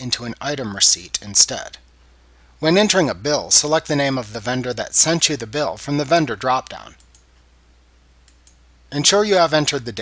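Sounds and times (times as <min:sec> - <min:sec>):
faint computer mouse clicks: 0:07.0 - 0:07.3, 0:08.2 - 0:08.6.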